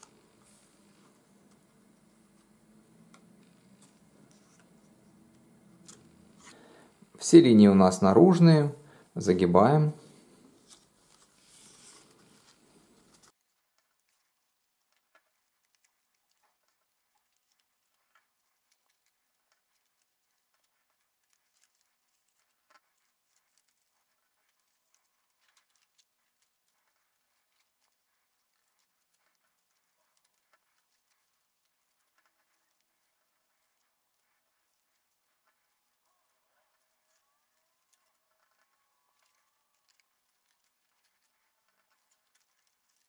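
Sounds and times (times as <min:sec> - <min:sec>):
cardboard rustling being folded: 0:10.5 - 0:13.3.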